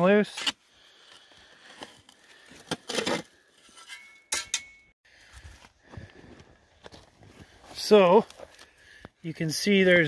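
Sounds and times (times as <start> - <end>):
shovel scraping rock and gravel: 1.6 - 4.6
sharp metallic clinks: 3.8 - 5.0.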